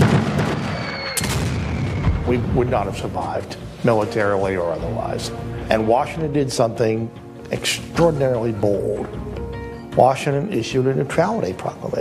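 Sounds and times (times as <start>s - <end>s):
cannon booms: 0.0s - 3.0s.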